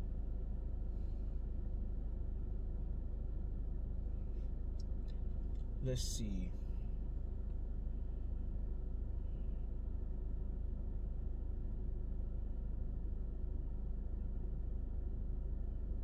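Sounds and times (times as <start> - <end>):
car cabin hum: 0.0 - 16.0.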